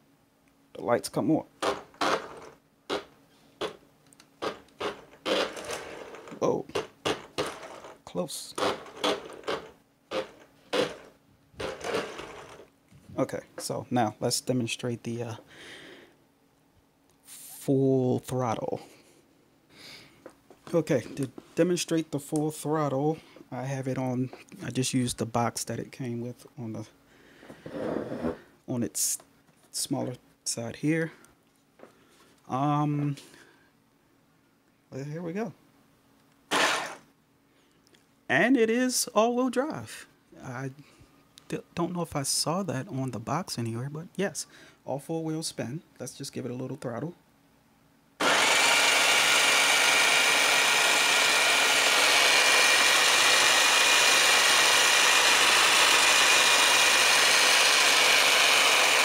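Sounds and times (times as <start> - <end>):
toy car motor whirring: 4.8 - 6.3, 8.6 - 12.6, 36.5 - 37.0, 48.2 - 59.0
toy car shuffling on wooden table: 8.6 - 12.7, 27.6 - 28.4.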